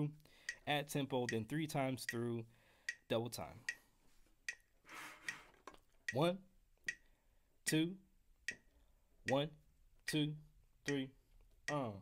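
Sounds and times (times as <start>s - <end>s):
metronome clicking: 0.0s - 3.8s, 4.4s - 5.4s, 6.0s - 12.0s.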